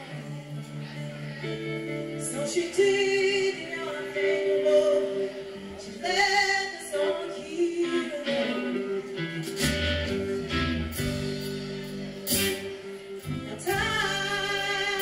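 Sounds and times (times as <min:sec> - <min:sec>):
woman singing: 0:00.0 - 0:09.4, 0:13.2 - 0:15.0
electric guitar: 0:00.0 - 0:15.0
bass guitar notes: 0:09.1 - 0:15.0.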